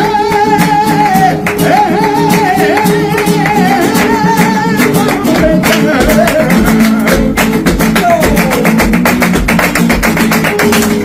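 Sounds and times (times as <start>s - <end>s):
acoustic guitar strumming: 0.0s - 11.0s
hand clapping: 0.0s - 11.0s.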